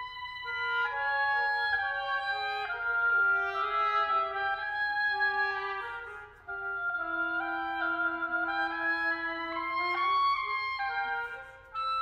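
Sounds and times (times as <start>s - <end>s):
oboes playing chamber music: 0.0s - 12.0s.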